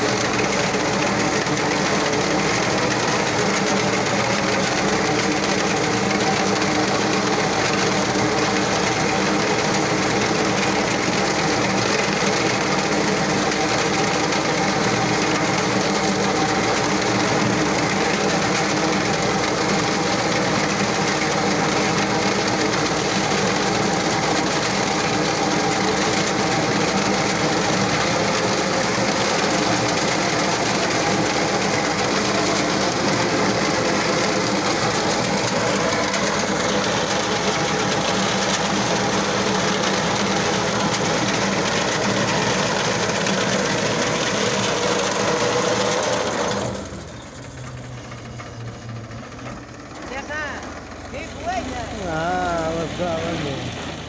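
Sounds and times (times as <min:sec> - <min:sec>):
tractor engine hum: 0:00.0 - 0:54.0.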